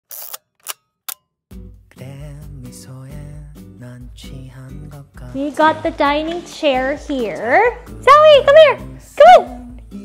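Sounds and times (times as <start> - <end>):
background music: 1.5 - 10.0.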